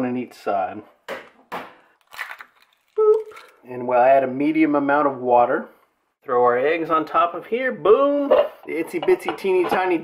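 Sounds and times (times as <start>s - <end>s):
eggshells cracking: 1.9s - 3.7s.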